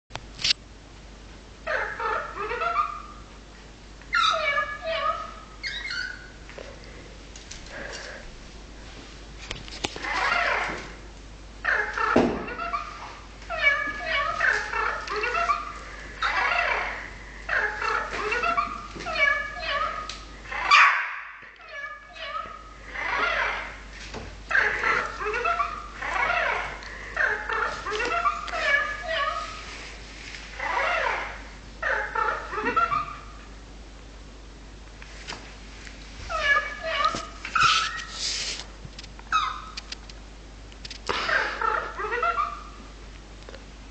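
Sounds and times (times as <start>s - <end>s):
pet animal whining: 4.1s - 6.7s, 10.0s - 11.0s, 11.6s - 23.8s, 24.5s - 29.7s, 30.5s - 33.4s, 36.2s - 38.3s.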